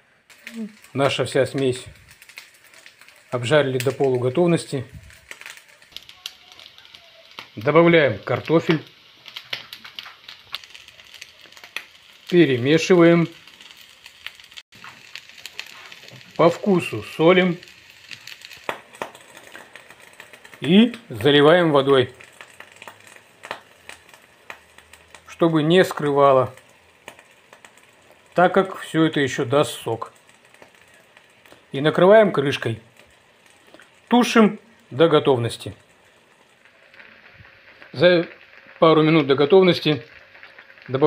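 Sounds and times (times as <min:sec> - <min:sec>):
stew popping and crackling in pan: 0:00.0 - 0:41.0
vegetables frying in oil: 0:00.0 - 0:41.0.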